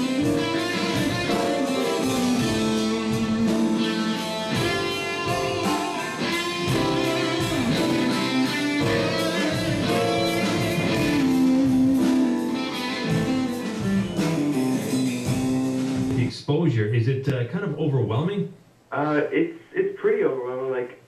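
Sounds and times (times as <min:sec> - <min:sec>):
electric guitar lead with bent notes: 0:00.0 - 0:16.3
keyboard accompaniment: 0:00.0 - 0:16.3.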